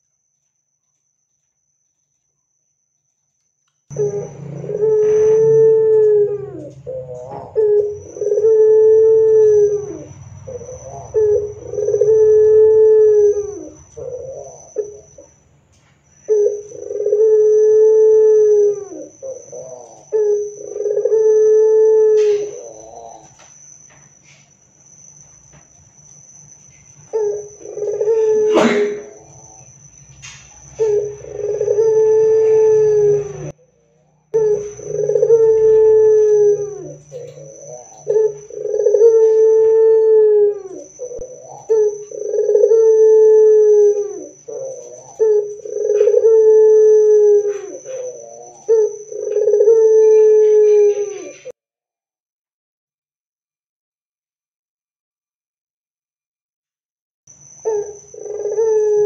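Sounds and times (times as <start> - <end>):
faint high whine: 0.0 - 51.5
dove cooing: 3.9 - 15.4, 16.2 - 23.4, 27.0 - 51.6, 57.6 - 59.0.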